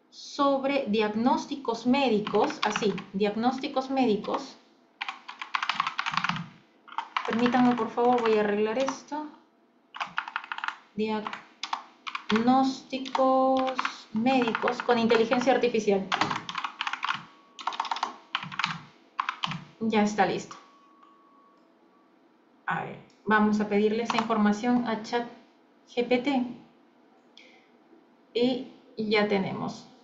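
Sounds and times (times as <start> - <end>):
computer keyboard typing: 2.2 - 4.4, 5.0 - 9.1, 10.0 - 19.7, 24.0 - 24.4.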